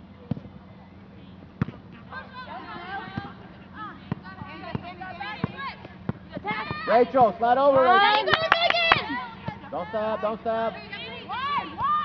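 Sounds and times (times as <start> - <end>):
steady low hum: 0.0 - 12.0
voices of players and spectators: 0.0 - 12.0.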